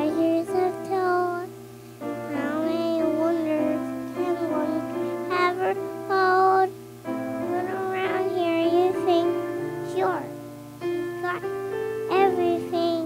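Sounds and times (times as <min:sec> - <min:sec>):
girl singing into a microphone: 0:00.0 - 0:06.8, 0:07.4 - 0:10.4, 0:11.2 - 0:11.5, 0:12.1 - 0:13.0
instrumental accompaniment: 0:01.6 - 0:13.0.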